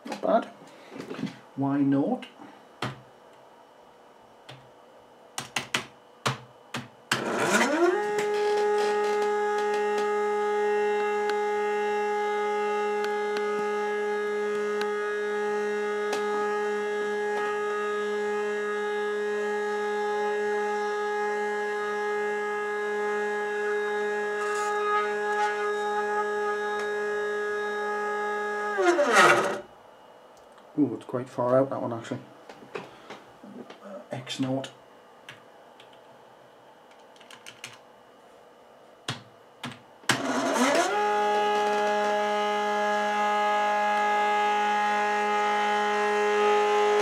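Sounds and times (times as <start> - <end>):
stepper motor whine: 7.1 - 29.8, 40.1 - 47.0.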